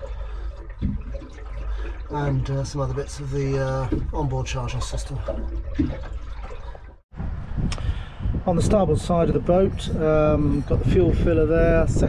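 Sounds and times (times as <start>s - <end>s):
water lapping against hull: 0.0s - 7.1s.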